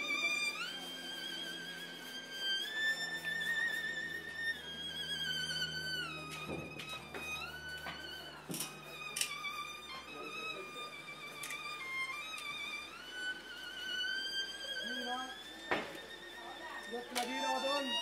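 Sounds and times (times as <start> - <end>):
solo violin playing slow melody: 0.0 - 18.0.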